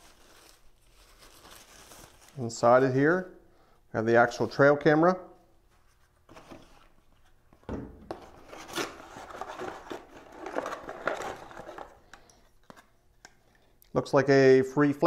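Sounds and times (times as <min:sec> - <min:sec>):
cardboard and plastic rustling: 0:05.7 - 0:12.8.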